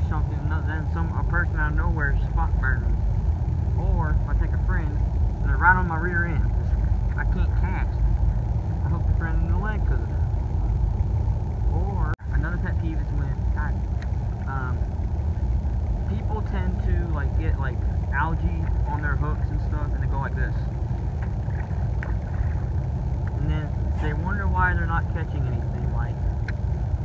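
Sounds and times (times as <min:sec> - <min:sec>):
young man talking: 0:00.0 - 0:03.0, 0:03.7 - 0:08.0, 0:08.8 - 0:10.3, 0:11.7 - 0:13.8, 0:14.5 - 0:14.9, 0:16.0 - 0:20.7, 0:23.4 - 0:26.2
low rumble: 0:00.0 - 0:27.0.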